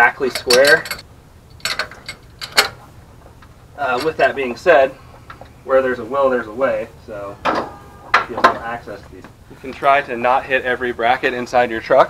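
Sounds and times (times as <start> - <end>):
wrench clinking on metal: 0.0 - 1.0, 1.6 - 2.8.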